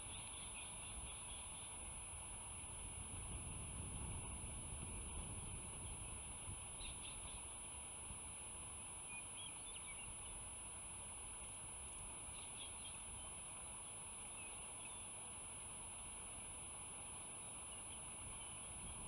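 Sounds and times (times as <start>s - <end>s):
bird chirps: 9.1s - 10.4s.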